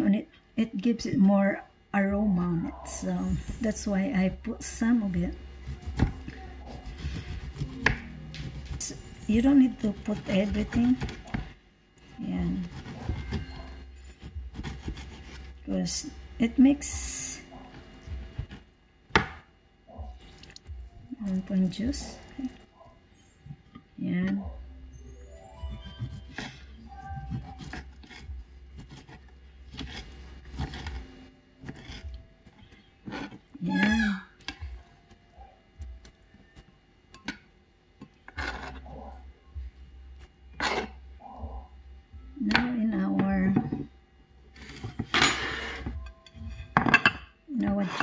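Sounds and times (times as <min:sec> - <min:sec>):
knife cutting fruit: 0:05.6 - 0:11.5, 0:12.4 - 0:15.6, 0:25.7 - 0:32.2
background music: 0:15.5 - 0:37.6, 0:38.2 - 0:48.0.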